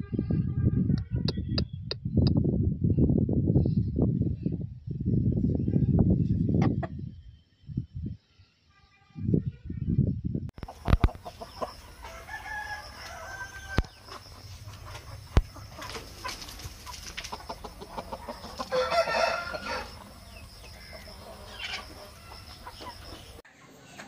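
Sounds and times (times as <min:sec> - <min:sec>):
chickens clucking: 0:06.4 - 0:07.1, 0:10.6 - 0:24.0
rooster crowing: 0:11.7 - 0:14.1, 0:17.9 - 0:23.2.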